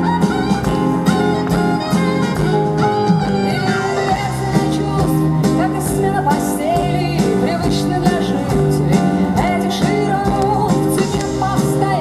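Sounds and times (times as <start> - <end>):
electric guitar: 0.0 - 12.0
woman singing: 3.4 - 12.0.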